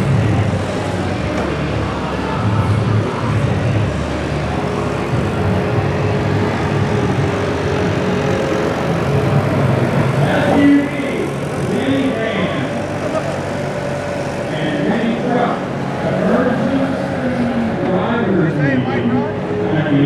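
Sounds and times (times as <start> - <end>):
people's voices: 0.0 - 20.0
vehicle engines rumbling: 0.0 - 20.0.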